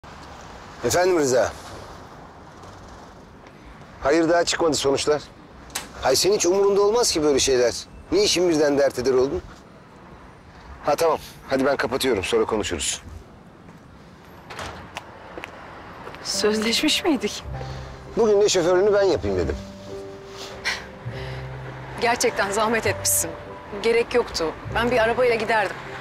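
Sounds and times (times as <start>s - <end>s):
distant city traffic hum: 0.0s - 26.0s
quiet street background: 0.0s - 26.0s.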